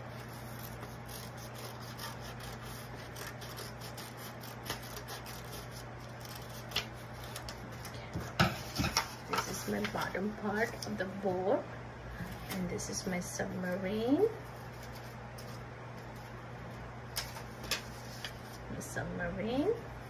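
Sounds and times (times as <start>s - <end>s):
steady low hum: 0.0s - 20.0s
scissors cutting paper: 0.2s - 7.9s
paper rustling: 17.1s - 18.6s.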